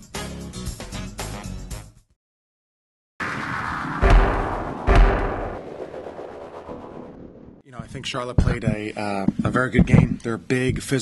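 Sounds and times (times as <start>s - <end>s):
deep booming hit: 3.2s - 6.1s.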